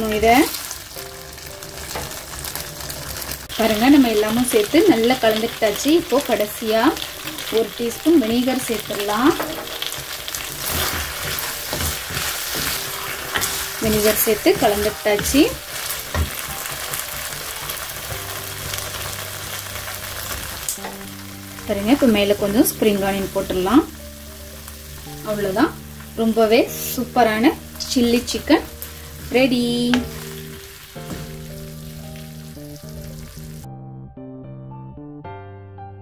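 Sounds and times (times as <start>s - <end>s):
food sizzling in a wok: 0.0s - 33.7s
background music with held notes: 0.0s - 36.0s.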